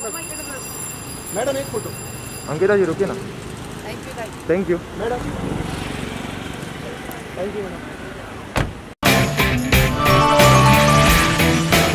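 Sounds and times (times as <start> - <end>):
car door shutting: 8.5 - 8.9
loud music with drum hits: 9.0 - 11.9.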